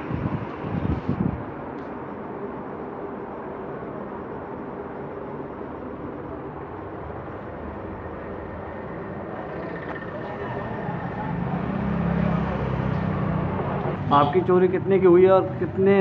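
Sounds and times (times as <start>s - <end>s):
steady background noise: 0.0s - 16.0s
faint indistinct voices: 9.2s - 13.2s.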